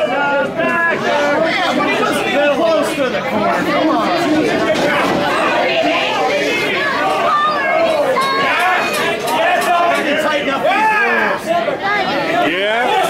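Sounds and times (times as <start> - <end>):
spectators talking and calling out: 0.0 - 13.0.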